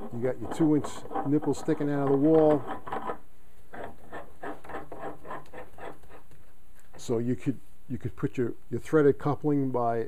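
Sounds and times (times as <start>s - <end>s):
plastic scraping on metal pipe: 0.0s - 7.1s.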